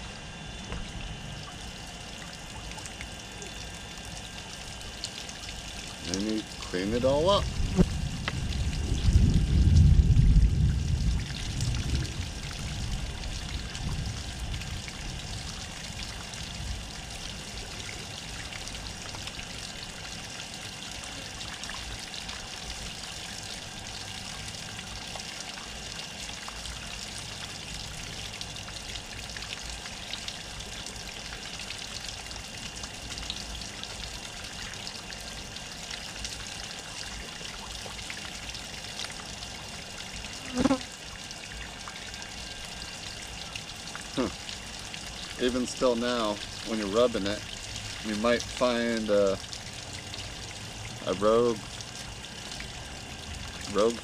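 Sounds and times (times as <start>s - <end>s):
water from hose running: 0.0s - 54.0s.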